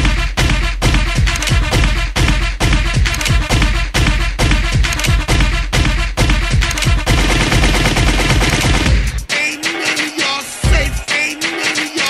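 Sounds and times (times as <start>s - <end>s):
machine gun fire sound effect: 7.1s - 9.1s.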